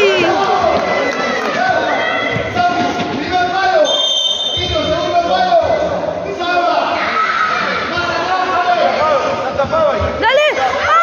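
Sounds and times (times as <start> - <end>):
people shouting and calling out: 0.0 - 3.9, 4.5 - 11.0.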